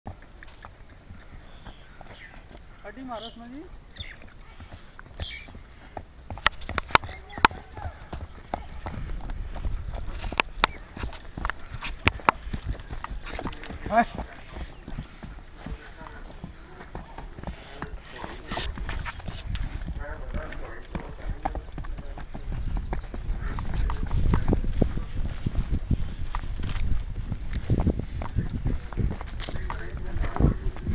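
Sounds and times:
horse hoofbeats on dirt: 0.1s - 30.9s.

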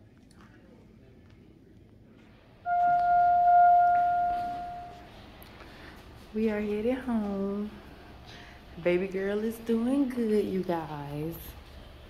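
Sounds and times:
elevator chime ding: 2.7s - 5.1s.

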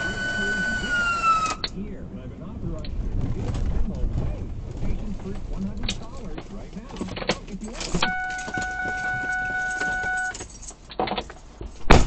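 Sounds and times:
clicks and handling noises: 2.8s - 11.9s
electronic warning tone: 8.0s - 10.4s.

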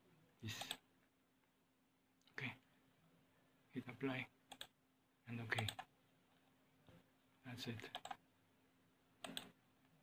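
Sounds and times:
computer mouse click: 0.6s - 0.8s, 4.5s - 4.8s, 5.5s - 5.9s, 7.9s - 8.2s, 9.2s - 9.6s.

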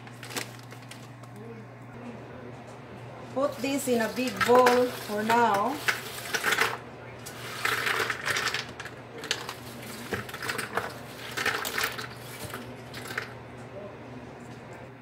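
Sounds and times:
snack mix clattering into a bowl: 5.8s - 13.3s.

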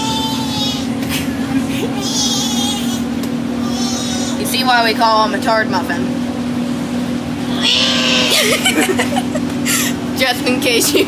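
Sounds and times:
steady hum: 0.0s - 10.8s
child imitating lamb bleat: 7.5s - 8.5s.

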